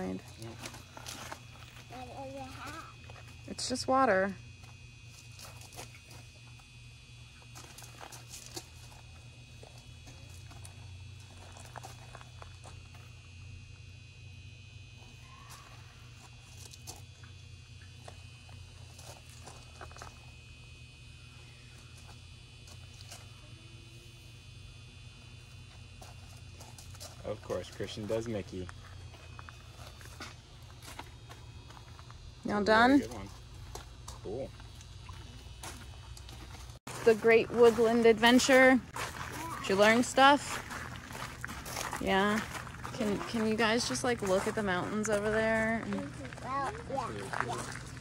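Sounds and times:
steady low hum: 0:00.0 - 0:48.0
child's voice: 0:01.9 - 0:03.0, 0:39.3 - 0:39.8, 0:45.8 - 0:47.7.

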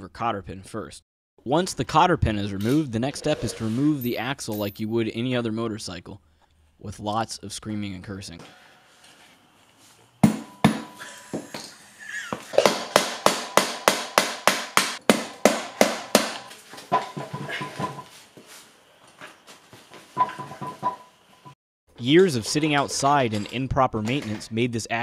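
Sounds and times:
hammer striking metal axle: 0:10.2 - 0:11.5, 0:12.6 - 0:18.1, 0:20.2 - 0:21.1.

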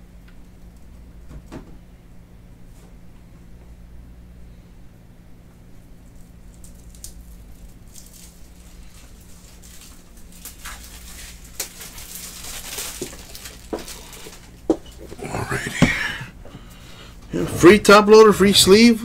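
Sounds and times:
faint low hum: 0:00.0 - 0:19.0.

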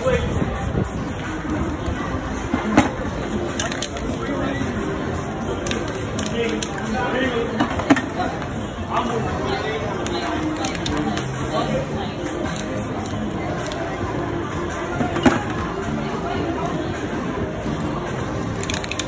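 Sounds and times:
spray-paint cans hissing: 0:00.0 - 0:02.0, 0:03.6 - 0:06.9, 0:10.2 - 0:13.9
background chatter: 0:00.0 - 0:19.0.

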